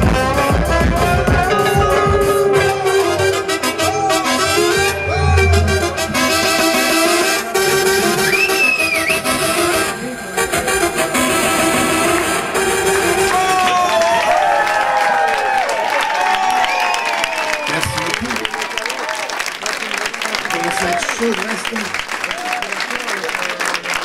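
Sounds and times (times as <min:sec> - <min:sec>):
trombone: 0:00.0 - 0:13.3
electro-swing band playing: 0:00.0 - 0:13.9
audience clapping: 0:10.7 - 0:24.0.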